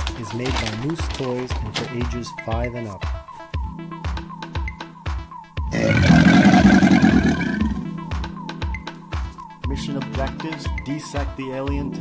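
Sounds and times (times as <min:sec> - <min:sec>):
background music with steady beat: 0:00.0 - 0:12.0
loud roar: 0:05.7 - 0:07.8.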